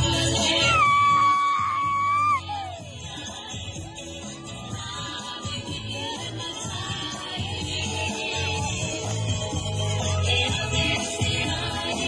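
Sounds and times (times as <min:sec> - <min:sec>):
dance song: 0:00.0 - 0:12.0.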